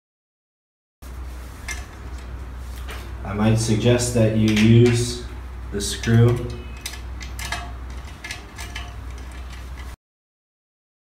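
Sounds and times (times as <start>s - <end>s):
steady low hum: 1.0s - 10.0s
screwdriver clicking and scraping metal: 4.4s - 10.0s.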